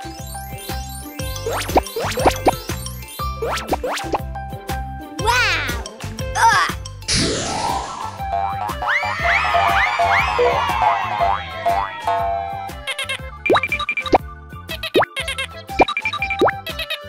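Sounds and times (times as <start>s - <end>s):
bouncy children's music: 0.0s - 7.1s, 7.9s - 17.0s
cartoon whoosh: 7.1s - 8.2s.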